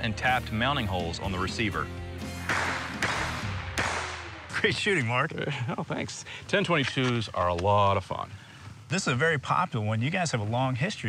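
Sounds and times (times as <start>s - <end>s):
background music: 0.0s - 4.6s
rifle shots: 2.4s - 4.7s.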